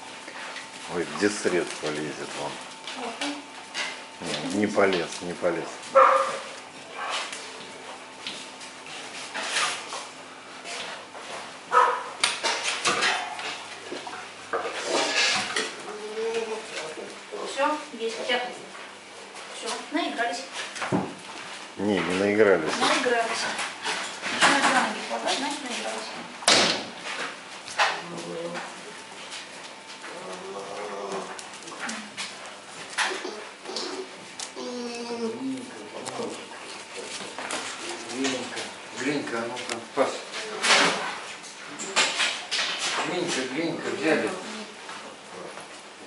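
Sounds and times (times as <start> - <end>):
bear cubs whimpering: 33.2 - 35.8.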